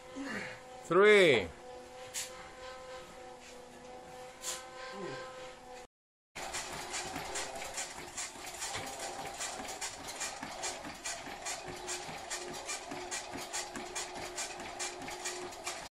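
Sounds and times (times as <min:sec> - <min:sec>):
footfalls pounding on treadmill: 0:06.4 - 0:15.9
treadmill hum: 0:06.4 - 0:15.9.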